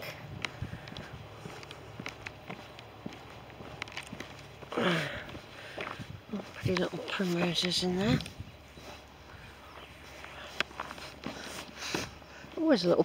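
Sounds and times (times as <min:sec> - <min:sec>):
footsteps on tarmac: 0:00.0 - 0:13.0
person vocal sound: 0:04.7 - 0:05.3.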